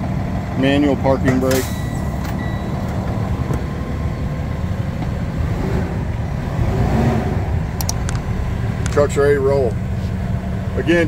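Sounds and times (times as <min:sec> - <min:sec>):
diesel engine idling: 0:00.0 - 0:11.0.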